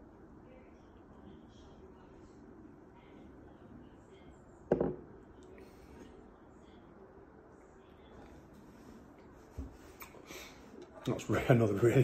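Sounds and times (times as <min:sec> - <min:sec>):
glass mug set down on table: 0:04.7 - 0:05.0.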